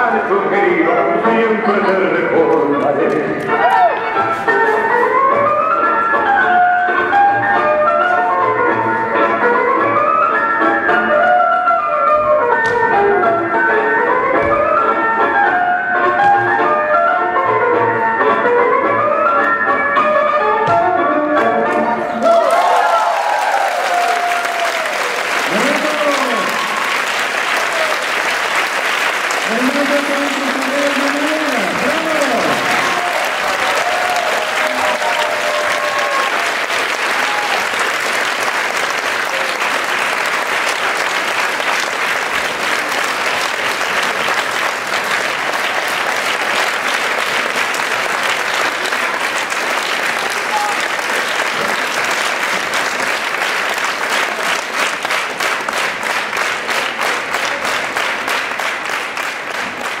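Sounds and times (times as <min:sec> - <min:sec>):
rhythmic clapping in unison: 0:02.3 - 0:03.9, 0:21.6 - 1:00.0
audience applauding: 0:22.2 - 1:00.0.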